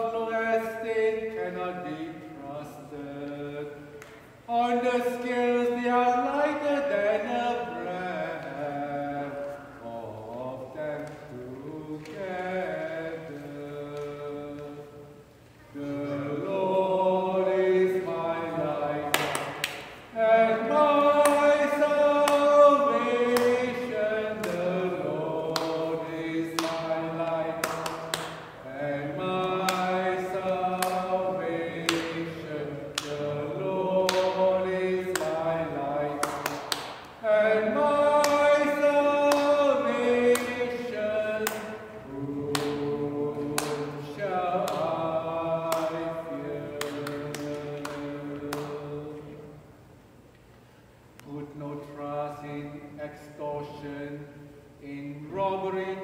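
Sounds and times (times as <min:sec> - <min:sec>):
choir singing: 0:00.0 - 0:49.7
man chanting in reverberant church: 0:00.0 - 0:49.9, 0:51.2 - 0:56.0
cantor singing: 0:00.0 - 0:50.2, 0:51.1 - 0:56.0.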